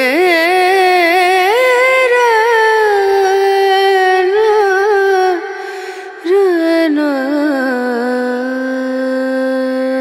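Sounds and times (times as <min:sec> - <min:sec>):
high voice singing with vibrato: 0:00.0 - 0:10.0.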